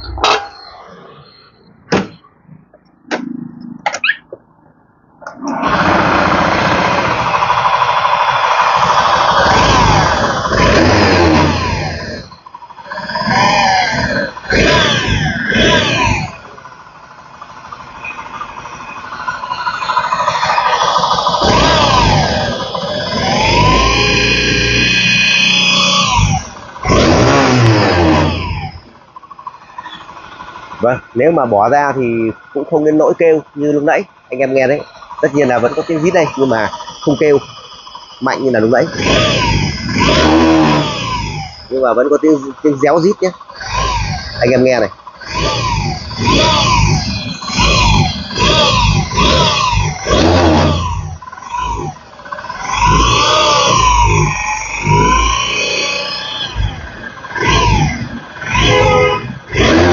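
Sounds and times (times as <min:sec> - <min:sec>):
squealing whine: 0:00.0 - 0:59.9
scooter engine revving: 0:05.2 - 0:59.9.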